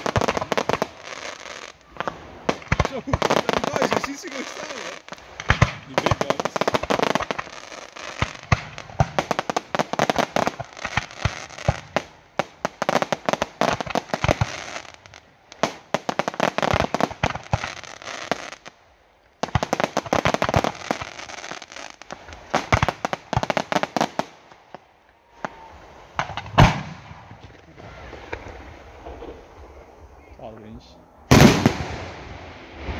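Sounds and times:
fireworks bangs and crackle: 0.0 - 18.8, 19.4 - 30.0, 31.3 - 32.9.

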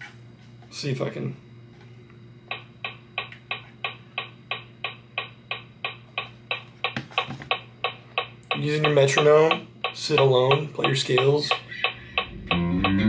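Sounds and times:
metronome clicking: 2.5 - 6.7, 7.5 - 13.0.

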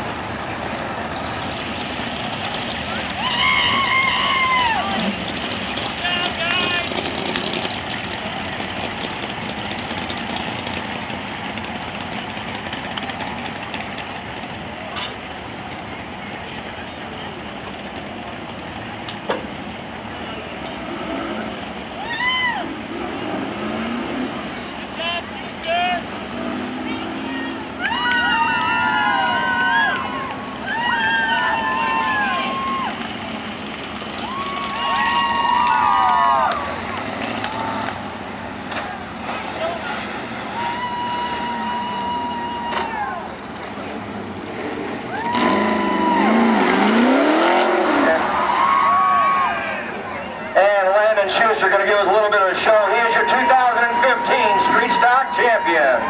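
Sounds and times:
race car engine revving: 0.0 - 14.6, 22.7 - 30.6, 42.9 - 50.0, 50.6 - 56.0
tyres squealing: 50.6 - 56.0.

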